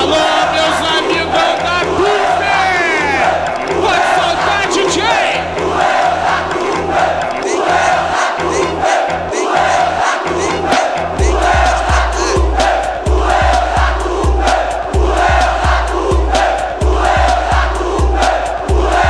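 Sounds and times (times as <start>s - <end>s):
crowd chanting: 0.0s - 19.0s
dj beat with bass line: 0.0s - 19.0s
bass kick drum: 10.7s - 19.0s.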